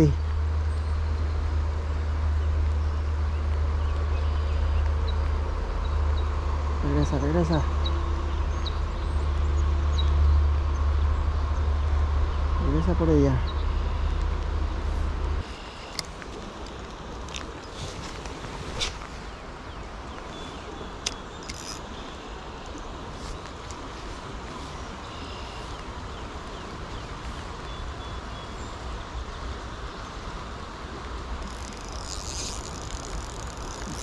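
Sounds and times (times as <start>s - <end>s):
low wind rumble: 0.0s - 34.0s
rain falling on river: 0.0s - 34.0s.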